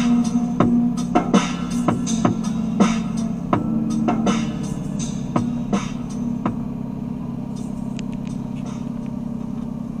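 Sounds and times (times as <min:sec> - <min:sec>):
drum-machine music: 0:00.0 - 0:06.7, 0:07.4 - 0:10.0
car engine running: 0:00.0 - 0:10.0
tyre and road rumble: 0:00.0 - 0:10.0.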